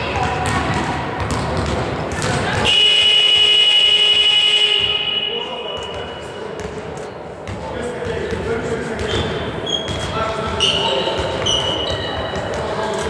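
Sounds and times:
basketball bouncing: 0.0s - 13.0s
voices echoing in gym: 0.0s - 13.0s
scoreboard buzzer tone: 2.7s - 6.0s.

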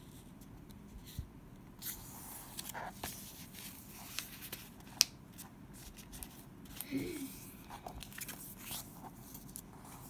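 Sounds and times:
paper rustling and creasing: 1.8s - 10.0s.

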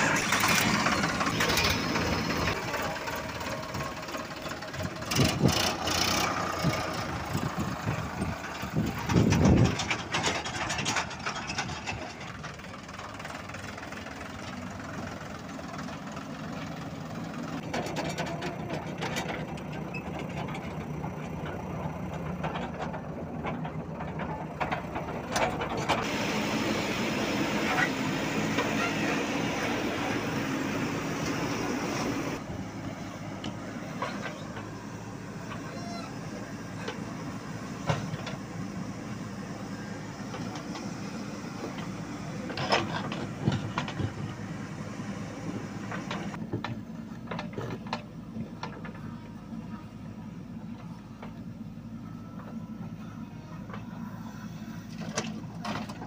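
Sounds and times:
diesel engines running: 0.0s - 56.0s.

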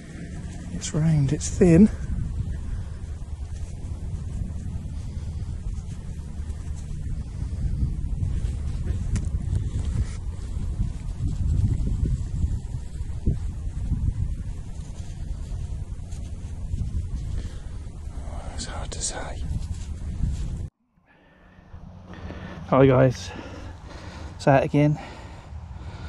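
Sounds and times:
wind buffeting microphone: 0.0s - 20.7s.

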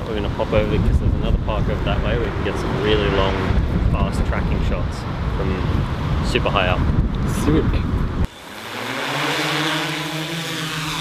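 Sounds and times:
drone rotors humming: 0.0s - 6.2s, 7.9s - 11.0s.

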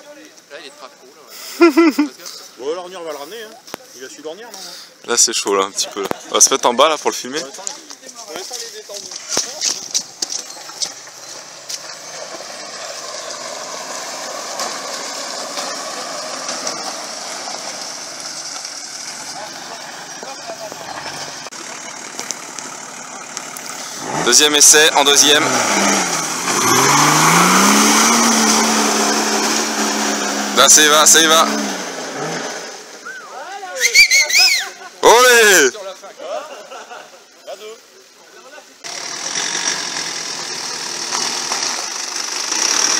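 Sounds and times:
car engine droning: 9.2s - 33.1s, 38.8s - 42.9s
people whooping and shouting: 33.1s - 34.8s.

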